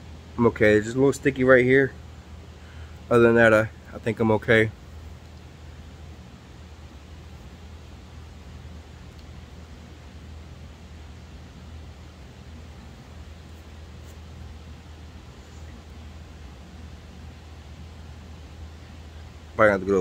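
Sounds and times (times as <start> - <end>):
room noise hum and hiss: 0.0 - 20.0.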